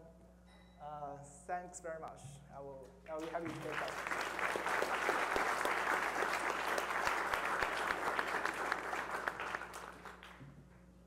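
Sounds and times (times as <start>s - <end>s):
audience applauding: 3.2s - 10.4s.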